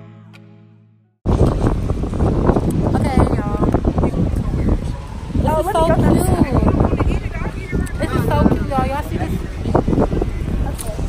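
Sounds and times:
wind buffeting microphone: 1.2 - 11.0.

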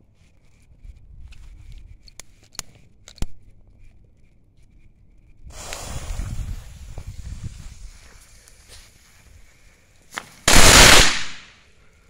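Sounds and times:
firework crackle pops: 5.5 - 7.2, 10.1 - 11.6
firework rumble: 5.5 - 8.0.

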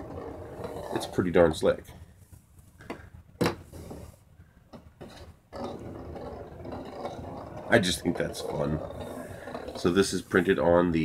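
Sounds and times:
plastic object rolling on metal: 0.0 - 2.0, 2.8 - 11.0.

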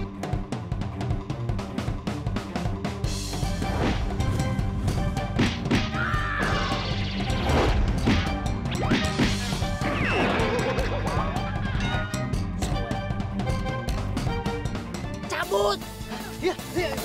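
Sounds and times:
background music: 0.0 - 17.0.

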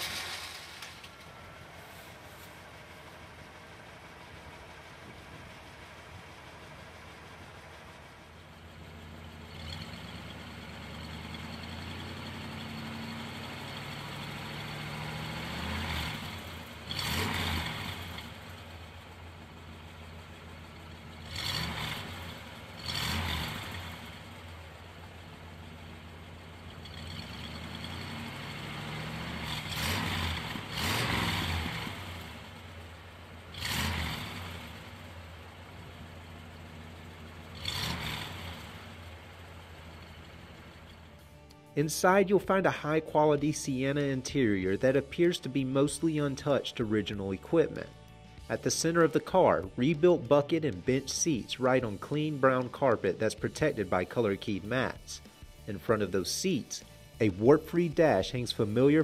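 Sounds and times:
car engine idling and revving: 0.0 - 59.0.

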